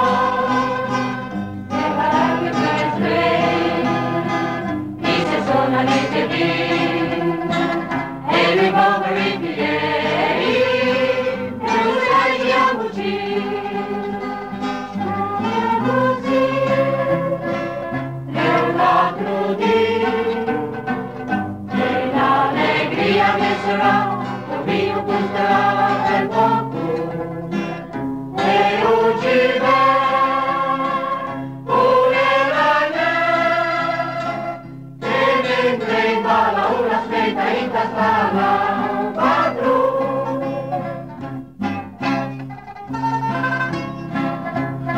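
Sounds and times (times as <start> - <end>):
choir singing with instruments: 0.0 - 42.6.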